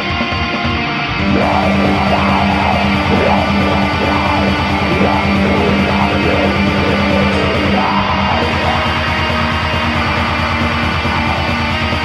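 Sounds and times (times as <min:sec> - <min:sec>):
distorted electric guitars: 0:00.0 - 0:12.0
fast drumming: 0:01.2 - 0:12.0.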